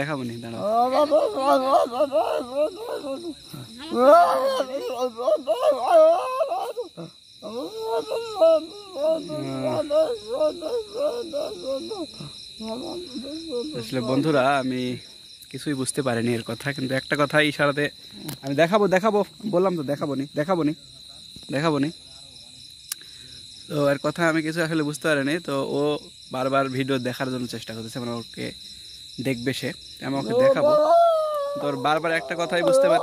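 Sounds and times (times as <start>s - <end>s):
man making speech-like sounds: 0.0s - 6.0s, 7.5s - 12.0s, 12.7s - 15.0s, 29.2s - 33.0s
insects chirping: 0.0s - 33.0s
man humming: 0.5s - 14.2s.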